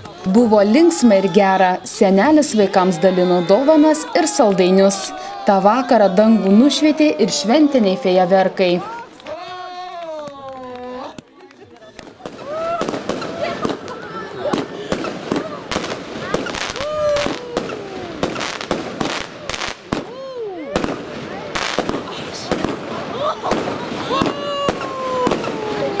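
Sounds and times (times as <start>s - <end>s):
people calling out: 0.0s - 11.3s, 12.2s - 26.0s
fireworks bangs and crackles: 12.0s - 26.0s.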